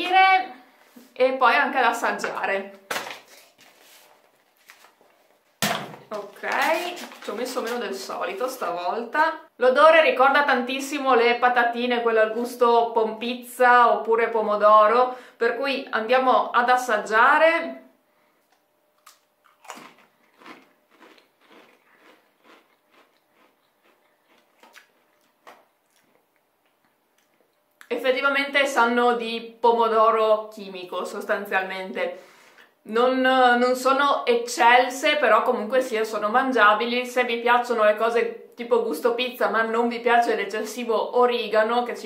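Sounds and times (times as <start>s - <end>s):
crisp crunching while chewing: 19.0s - 27.4s.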